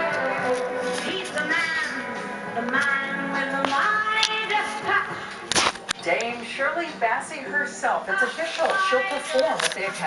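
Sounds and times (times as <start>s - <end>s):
television music with singing: 0.0s - 10.0s.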